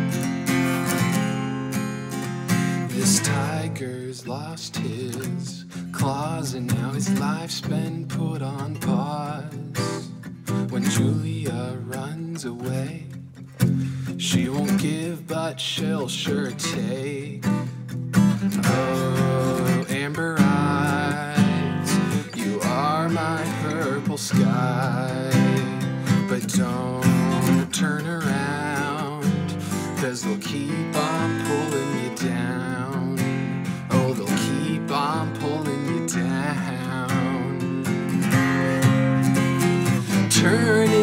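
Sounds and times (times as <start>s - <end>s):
acoustic guitar strumming: 0.0s - 41.0s
man singing: 2.7s - 17.8s, 18.4s - 41.0s.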